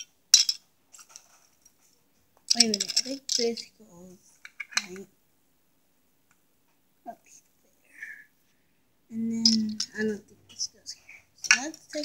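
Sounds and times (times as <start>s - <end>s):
plastic toy pieces clattering: 0.0s - 1.3s, 2.5s - 3.7s, 9.4s - 10.1s, 11.4s - 12.0s.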